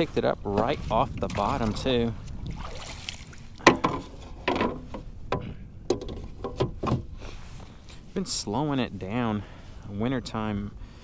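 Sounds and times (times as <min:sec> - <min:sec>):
water splashing: 0:00.0 - 0:05.0.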